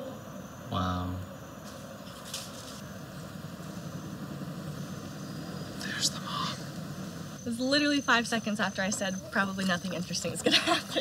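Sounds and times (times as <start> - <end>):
low mechanical hum: 0.0 - 11.0
hissing rustles: 1.6 - 10.4.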